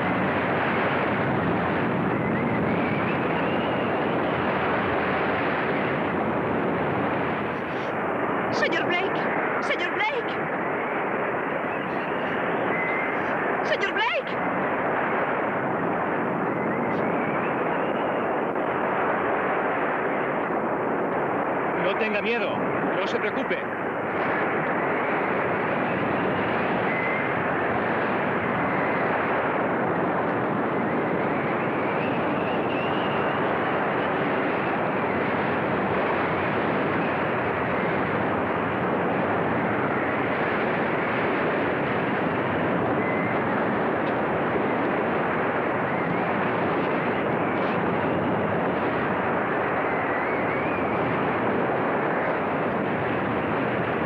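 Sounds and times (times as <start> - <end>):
gale-force wind: 0.0 - 54.0
heavy sea: 0.0 - 54.0
shout-like voice: 8.6 - 10.4, 13.7 - 14.4.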